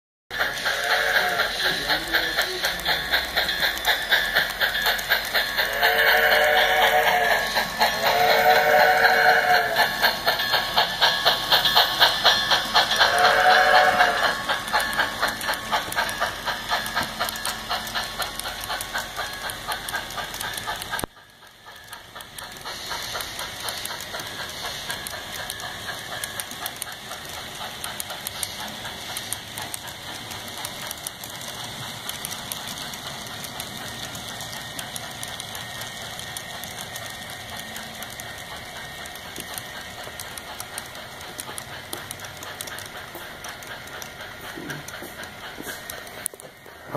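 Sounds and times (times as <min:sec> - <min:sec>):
steam locomotive chuffing: 0:00.3 - 0:46.9
locomotive whistle blast: 0:05.7 - 0:09.8, 0:13.1 - 0:14.3.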